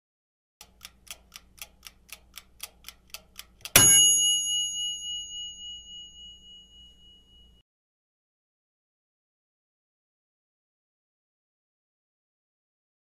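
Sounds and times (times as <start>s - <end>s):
clock ticking: 0.6s - 4.4s
bell ding: 3.8s - 7.6s.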